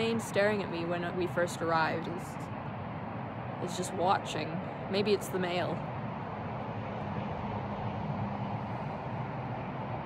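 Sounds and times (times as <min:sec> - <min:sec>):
low outdoor rush: 0:00.0 - 0:10.0.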